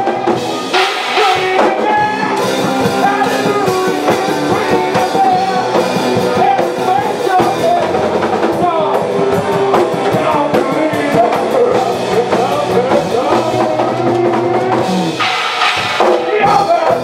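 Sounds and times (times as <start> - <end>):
man singing into a microphone: 0.0 - 14.8, 16.2 - 17.0
live band playing: 0.0 - 17.0.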